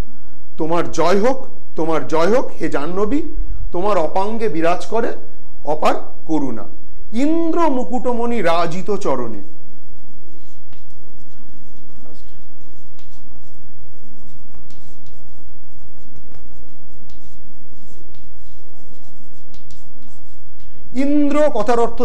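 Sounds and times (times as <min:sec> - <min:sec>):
chalk scratching on chalkboard: 0:08.8 - 0:22.0.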